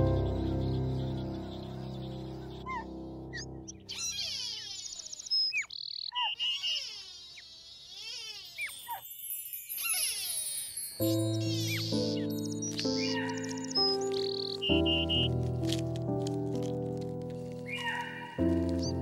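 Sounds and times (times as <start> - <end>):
held musical chord: 0.0 - 3.9
high chirping whistling calls: 2.2 - 15.3.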